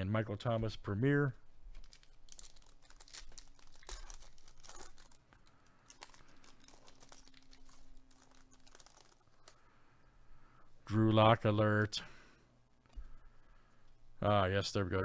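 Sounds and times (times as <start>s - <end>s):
foil wrapper tearing and crinkling: 1.7s - 9.6s.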